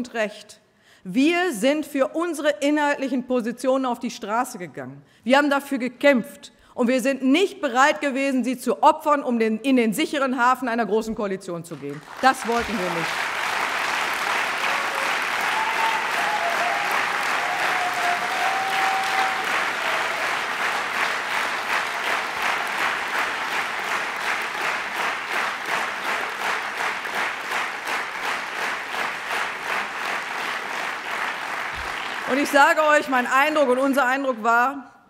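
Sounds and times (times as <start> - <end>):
rhythmic clapping in unison: 11.7 - 32.7
audience applauding: 11.7 - 32.8.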